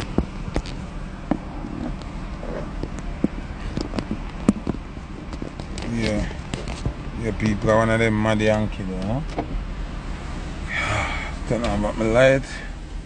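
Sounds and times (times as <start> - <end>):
car engine running: 0.0 - 13.0.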